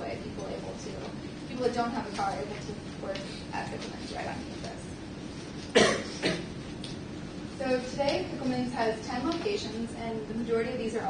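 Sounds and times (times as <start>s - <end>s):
person coughing: 5.7s - 6.5s.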